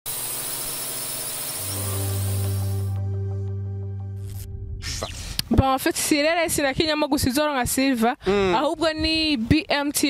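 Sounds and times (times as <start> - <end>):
deep steady bass tone: 1.9 - 5.4.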